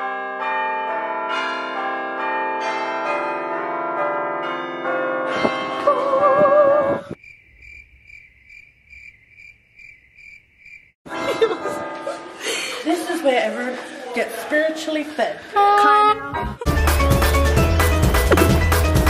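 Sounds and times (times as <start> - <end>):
cricket-like chirping: 7.1 - 11.0.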